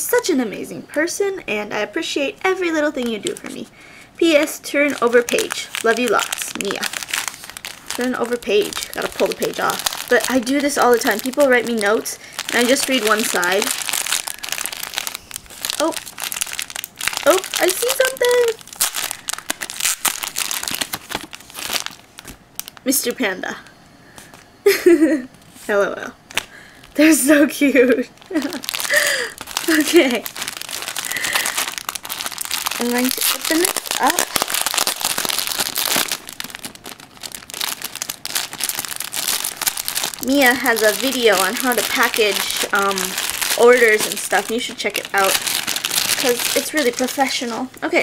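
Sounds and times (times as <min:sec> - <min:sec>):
plastic packaging crinkling: 0:02.4 - 0:24.5, 0:26.3 - 0:47.8.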